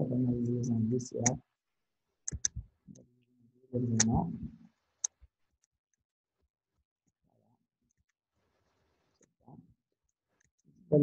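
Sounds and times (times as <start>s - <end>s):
man speaking: 0.0s - 1.4s, 3.8s - 4.6s
computer mouse clicks: 2.3s - 2.6s.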